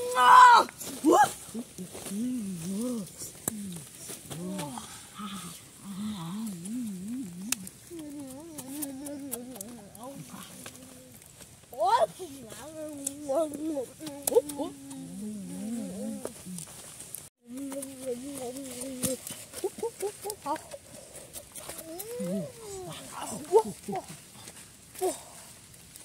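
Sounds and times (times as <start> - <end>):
person humming wavering tones: 1.7 - 11.2, 12.6 - 16.7, 17.5 - 20.6, 21.6 - 23.0.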